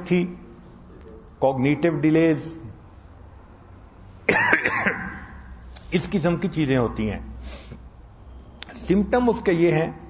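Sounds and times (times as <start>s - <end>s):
faint room hiss: 0.0s - 10.0s
man coughing: 4.3s - 5.4s.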